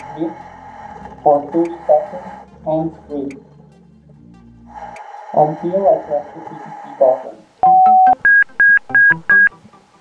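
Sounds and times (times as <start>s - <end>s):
short high electronic beeps: 7.6s - 9.5s.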